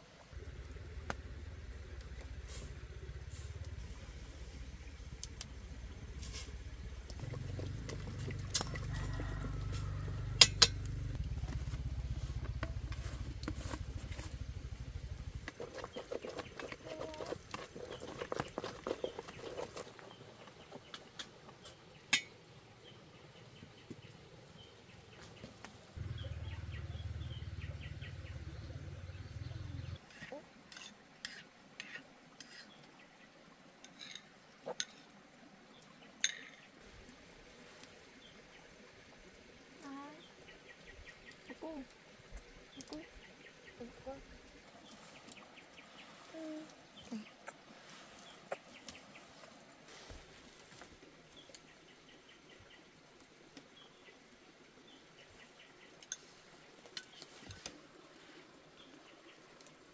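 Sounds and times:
low rumble: 0.4s - 8.9s, 9.5s - 15.5s
utensils clinking against metal pot: 10.4s - 10.9s, 22.1s - 22.3s.

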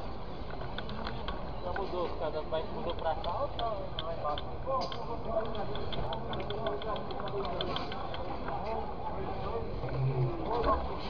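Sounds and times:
people talking indistinctly: 1.3s - 11.0s
low outdoor rumble: 3.7s - 11.0s.

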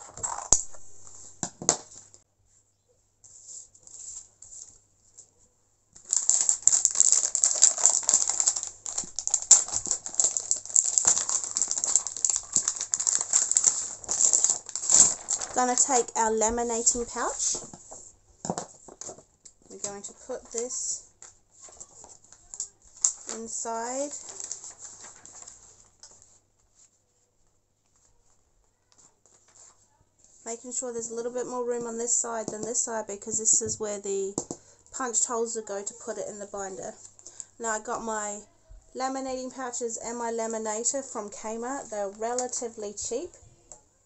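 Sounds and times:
plastic pack crinkling: 6.0s - 17.8s, 18.5s - 26.2s
paper rustling against plastic: 6.0s - 30.3s.

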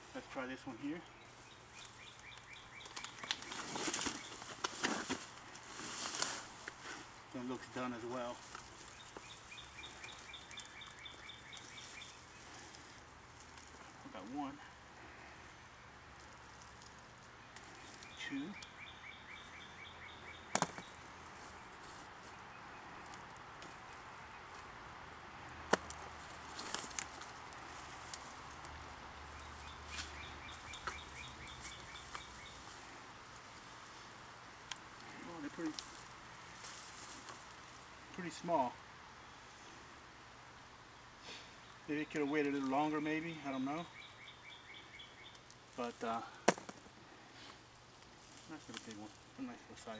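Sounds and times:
handling plants and soil in pot: 0.0s - 14.9s, 15.9s - 18.7s, 25.6s - 38.8s, 45.3s - 49.9s.

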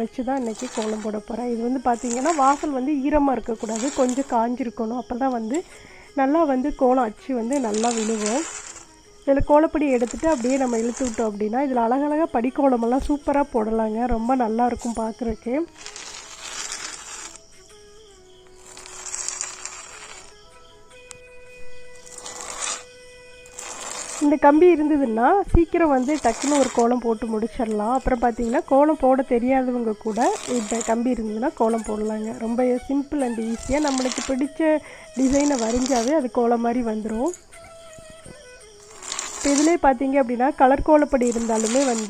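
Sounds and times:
faint background music: 0.0s - 42.0s
high-pitched hiss: 0.0s - 42.0s
metal tool scraping across floor: 0.3s - 4.4s, 7.5s - 9.0s, 9.9s - 11.4s, 14.7s - 15.1s, 15.7s - 17.5s, 18.4s - 24.6s, 25.8s - 28.8s, 30.0s - 34.5s, 35.2s - 36.3s, 38.8s - 39.9s, 41.0s - 42.0s
woman speaking: 9.3s - 15.7s, 24.2s - 37.4s, 39.4s - 42.0s.

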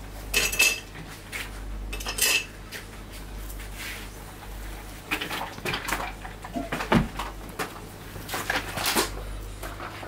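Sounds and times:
kitchen utensils clattering: 0.3s - 0.9s, 1.9s - 2.5s.

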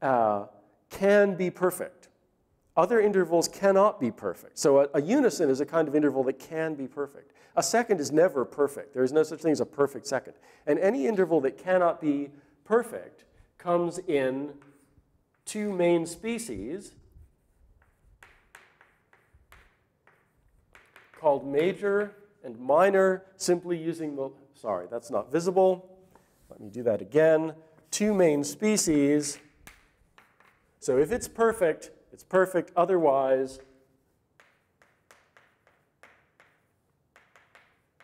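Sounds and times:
chalk writing on blackboard: 17.0s - 21.2s, 29.4s - 30.8s, 33.6s - 38.0s.

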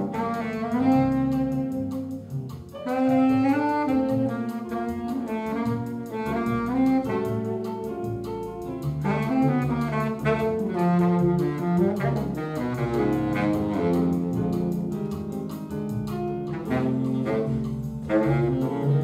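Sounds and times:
baritone saxophone bossa nova melody: 0.0s - 19.0s
low bass accompaniment: 0.0s - 19.0s.

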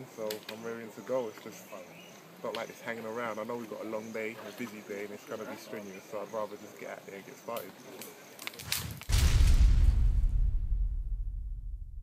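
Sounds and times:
outdoor background: 0.0s - 12.0s
deep boom: 8.8s - 12.0s.

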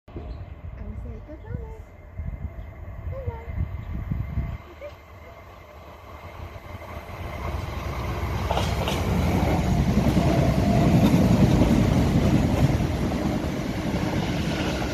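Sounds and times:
train wheels rumbling on rail: 0.1s - 14.9s.

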